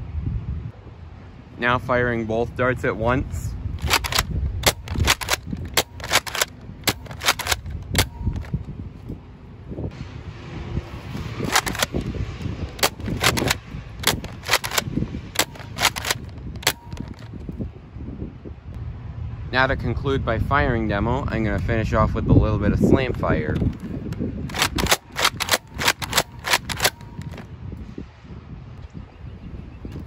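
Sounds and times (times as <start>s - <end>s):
dart blaster clacks and pops: 3.8s - 8.5s, 11.4s - 12.1s, 12.7s - 17.3s, 24.5s - 27.4s.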